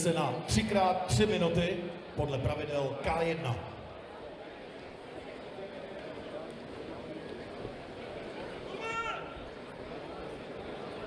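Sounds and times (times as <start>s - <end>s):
crowd murmuring in a hall: 0.0s - 11.0s.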